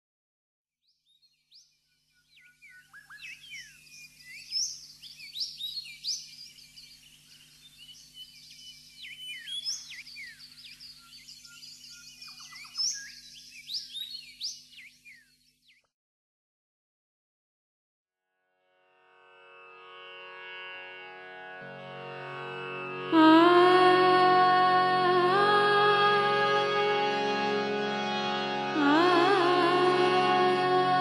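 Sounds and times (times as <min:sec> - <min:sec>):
small birds chirping chorus: 0:00.8 - 0:15.9.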